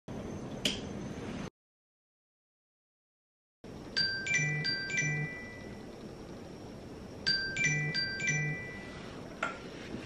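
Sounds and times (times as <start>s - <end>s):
faint room hiss: 3.7s - 10.0s.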